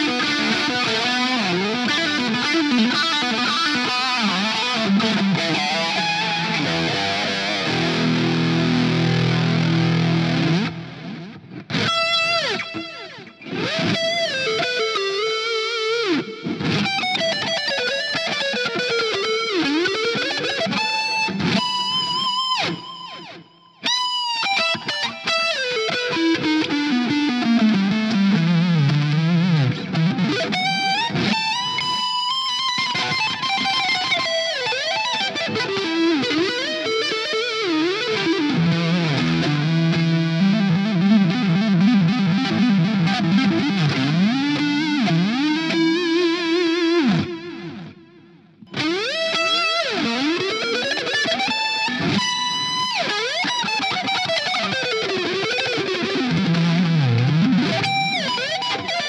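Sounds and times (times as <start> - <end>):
electric guitar riffing and lead lines: 0.0 - 59.0.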